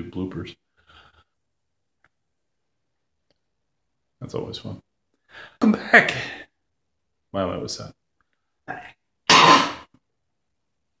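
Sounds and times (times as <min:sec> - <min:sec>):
man clearing throat: 0:09.3 - 0:09.8.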